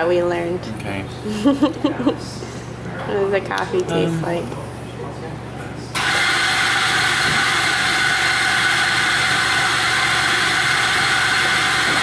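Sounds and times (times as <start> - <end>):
loud coffee machine noise: 0.0 - 12.0.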